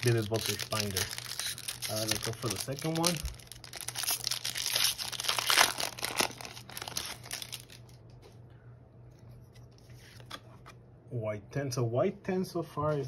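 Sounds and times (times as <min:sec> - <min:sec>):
cards rustling: 0:00.0 - 0:08.0
foil wrapper tearing and crinkling: 0:00.0 - 0:08.0.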